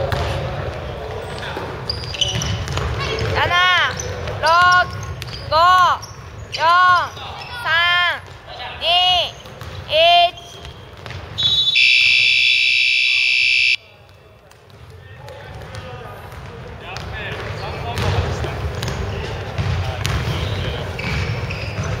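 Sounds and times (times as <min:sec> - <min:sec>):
players' voices: 0:00.0 - 0:22.0
shoes squeaking on gym floor: 0:01.2 - 0:07.8, 0:09.2 - 0:12.3, 0:20.3 - 0:22.0
electronic buzzer: 0:11.8 - 0:13.8.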